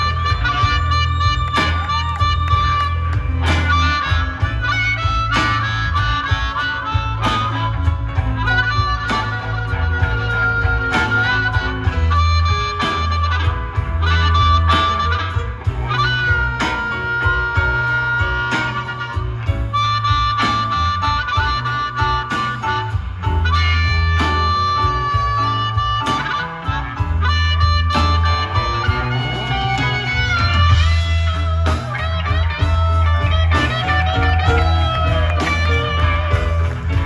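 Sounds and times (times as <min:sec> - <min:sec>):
amplified harmonica soloing: 0:00.0 - 0:37.0
drums: 0:00.0 - 0:37.0
electric bass: 0:00.0 - 0:37.0
electric guitar: 0:00.0 - 0:37.0.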